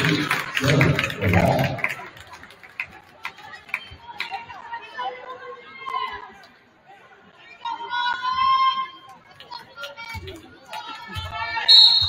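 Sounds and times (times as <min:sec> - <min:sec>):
voices shouting in a gym: 0:03.5 - 0:12.0.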